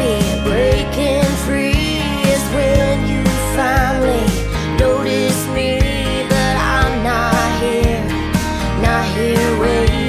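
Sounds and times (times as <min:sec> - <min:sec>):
country-pop song with band: 0:00.0 - 0:10.0.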